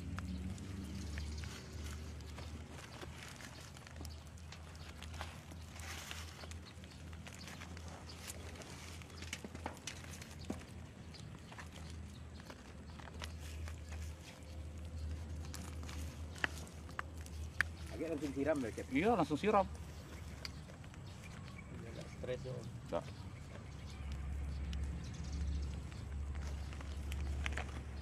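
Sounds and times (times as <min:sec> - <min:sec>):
hands firming soil in plastic bag: 0:00.0 - 0:28.0.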